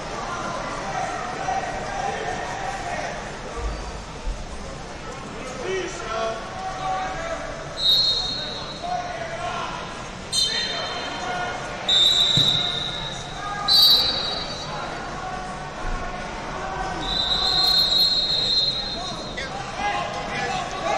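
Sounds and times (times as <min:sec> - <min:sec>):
crowd voices in a large room: 0:00.0 - 0:20.9
referee whistle blasts: 0:07.8 - 0:08.8, 0:10.3 - 0:11.2, 0:11.9 - 0:14.8, 0:17.0 - 0:19.4.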